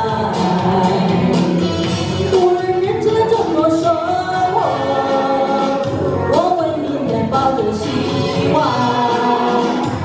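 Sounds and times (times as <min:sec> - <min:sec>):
instrumental accompaniment with beat: 0:00.0 - 0:10.0
woman singing pop ballad: 0:00.0 - 0:10.0.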